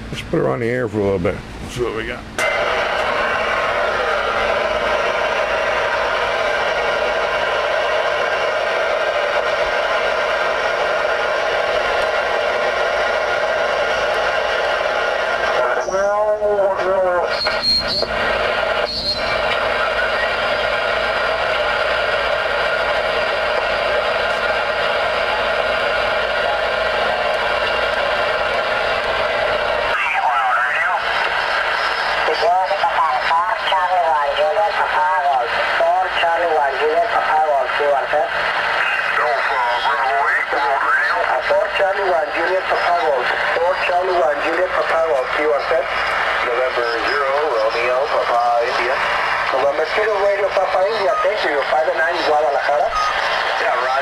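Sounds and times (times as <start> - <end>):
radio static: 0.0 - 54.0.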